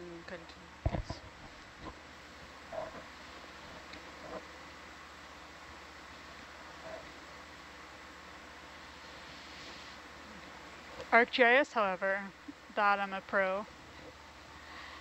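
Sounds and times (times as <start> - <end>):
low hiss and hum: 0.0 - 15.0.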